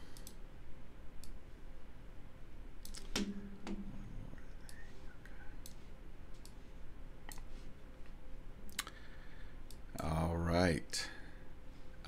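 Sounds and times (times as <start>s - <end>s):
computer mouse clicks: 0.2s - 0.4s, 2.8s - 3.8s, 7.3s - 7.5s
short low hum: 3.2s - 7.8s.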